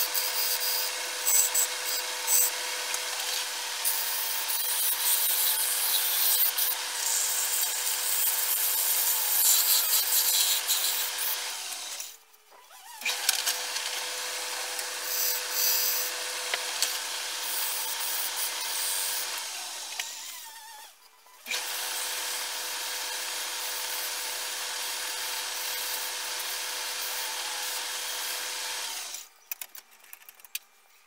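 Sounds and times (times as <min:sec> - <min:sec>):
wood lathe spinning: 0:00.0 - 0:12.0.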